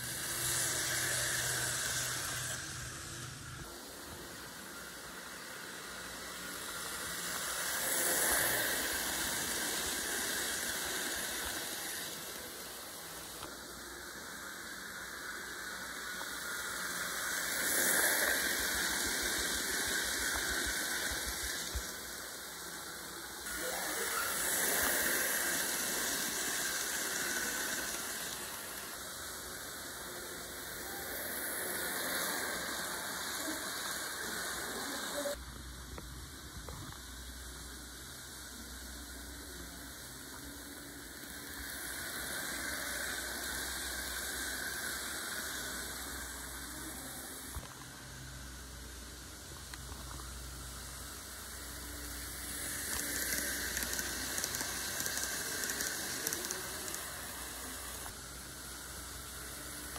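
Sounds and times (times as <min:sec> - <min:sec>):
model train whirring on rails: 0:00.0 - 0:59.9.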